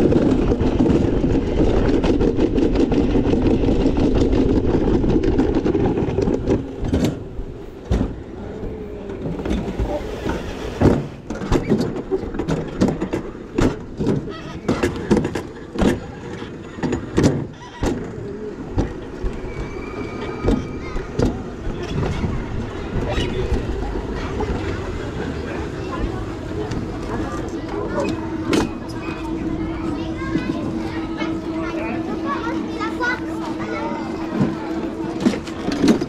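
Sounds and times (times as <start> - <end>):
bobsled rumbling in metal trough: 0.0 - 36.0
steady low hum: 0.0 - 36.0
people and child talking: 8.0 - 10.5, 14.2 - 36.0.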